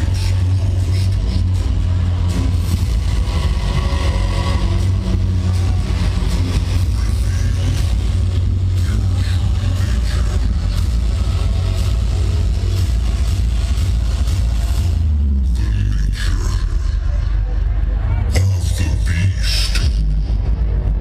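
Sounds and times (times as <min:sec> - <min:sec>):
loud industrial hardcore music: 0:00.0 - 0:21.0.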